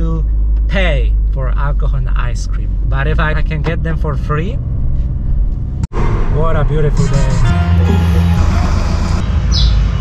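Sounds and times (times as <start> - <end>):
engine running with low rumble: 0.0 - 10.0
bird chirping: 8.7 - 10.0.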